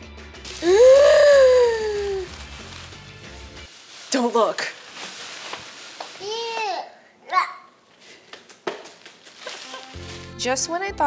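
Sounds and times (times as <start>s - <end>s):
background music: 0.0s - 3.7s, 9.6s - 11.0s.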